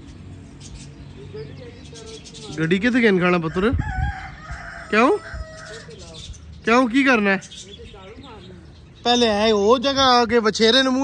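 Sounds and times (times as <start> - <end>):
rooster crowing: 3.4 - 6.0.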